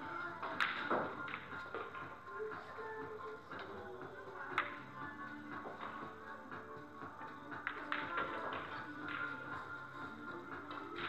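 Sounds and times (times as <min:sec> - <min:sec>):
billiard balls clicking: 0:00.0 - 0:02.2, 0:04.5 - 0:04.9, 0:07.6 - 0:09.5
background music: 0:00.0 - 0:11.0.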